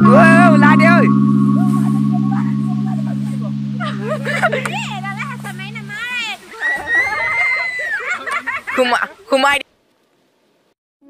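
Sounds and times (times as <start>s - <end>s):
organ-like keyboard chord: 0.0s - 6.1s
person singing wavering phrase: 0.0s - 6.1s.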